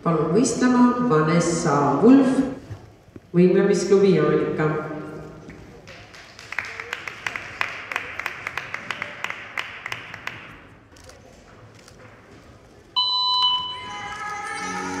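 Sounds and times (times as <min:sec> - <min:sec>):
audience clapping: 0:05.8 - 0:10.9.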